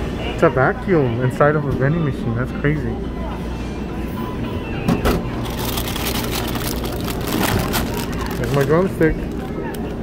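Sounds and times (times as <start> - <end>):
plastic wrapper crinkling: 5.4 - 10.0.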